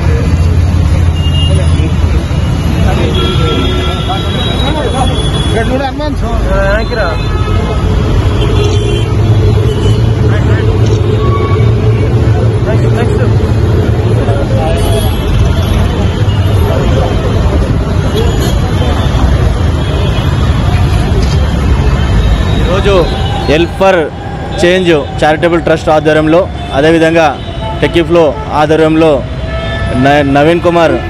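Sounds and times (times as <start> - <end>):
road traffic rumble: 0.0 - 31.0.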